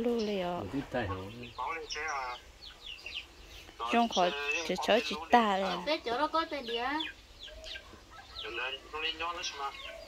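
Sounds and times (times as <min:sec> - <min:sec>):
chickens clucking: 0:00.0 - 0:10.0
woman's voice: 0:03.9 - 0:07.1.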